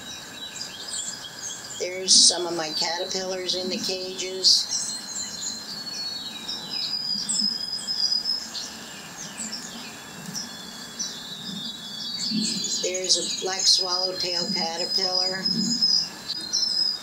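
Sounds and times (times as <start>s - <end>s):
small birds chirping: 0.0s - 17.0s
whistled bird notes: 0.0s - 17.0s.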